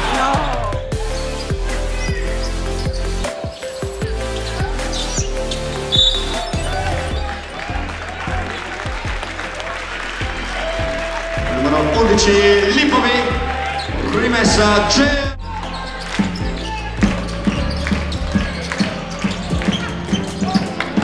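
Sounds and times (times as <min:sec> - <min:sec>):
crowd voices: 0:00.0 - 0:21.0
music over sound system: 0:00.0 - 0:21.0.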